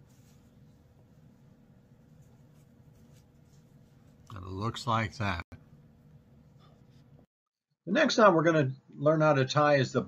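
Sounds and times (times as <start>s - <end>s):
rope rustling: 0.0s - 4.3s
faint room hum: 0.0s - 10.0s.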